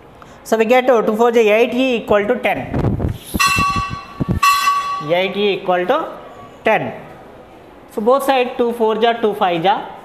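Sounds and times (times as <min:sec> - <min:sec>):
bell ringing: 0:03.4 - 0:05.3.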